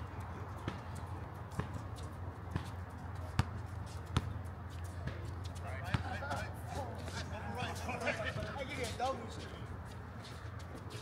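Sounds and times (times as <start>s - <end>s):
basketball bouncing on hard court: 3.4s - 4.4s.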